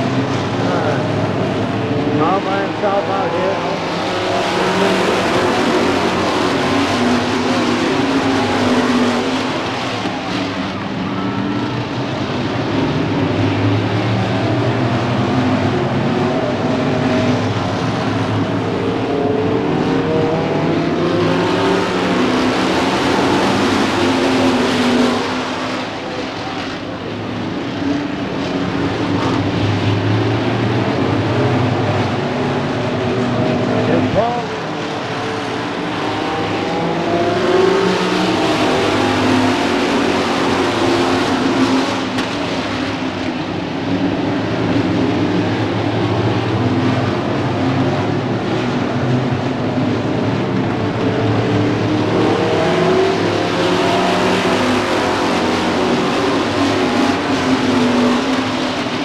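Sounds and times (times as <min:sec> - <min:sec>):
stock cars racing: 0:00.0 - 0:59.0.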